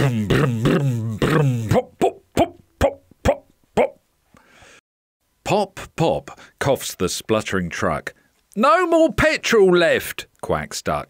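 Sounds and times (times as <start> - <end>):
man making popping sounds: 0.0 - 4.0.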